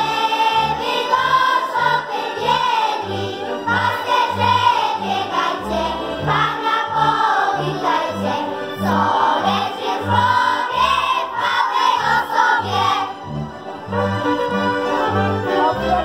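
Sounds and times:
children's choir singing: 0.0s - 16.0s.

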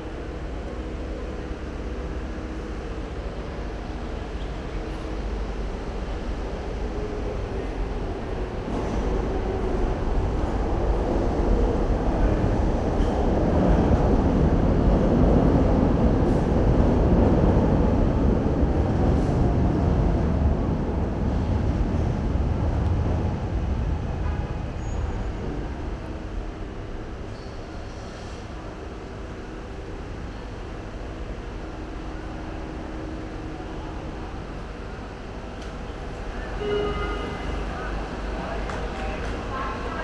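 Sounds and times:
elevated train rumbling overhead: 0.0s - 40.0s
street traffic: 0.0s - 40.0s.

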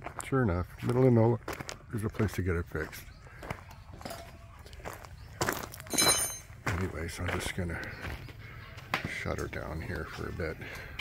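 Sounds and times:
footsteps on dirt road: 0.0s - 11.0s.

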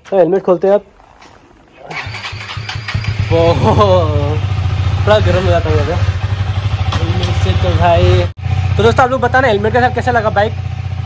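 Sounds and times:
motorcycle engine idling: 1.9s - 11.0s.

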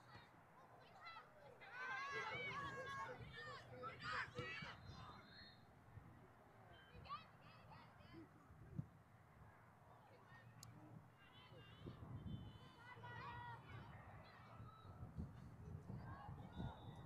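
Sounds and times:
wind rumble on microphone: 11.8s - 17.0s.

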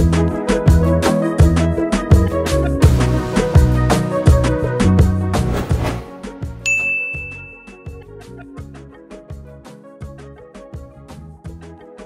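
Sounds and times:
background music with steady beat: 0.0s - 12.0s
bright chime ringing: 6.7s - 8.0s.

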